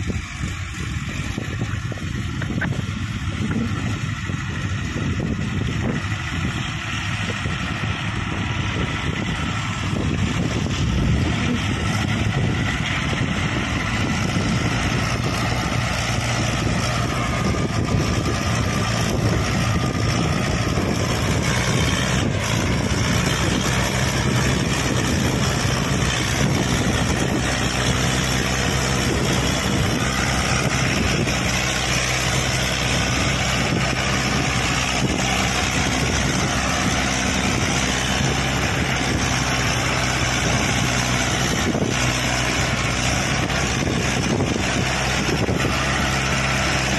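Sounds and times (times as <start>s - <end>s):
tractor diesel engine under load: 0.0s - 46.9s.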